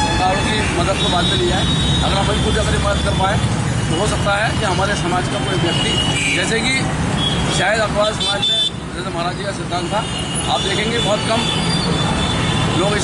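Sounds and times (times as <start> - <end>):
street traffic rumble: 0.0 - 13.0.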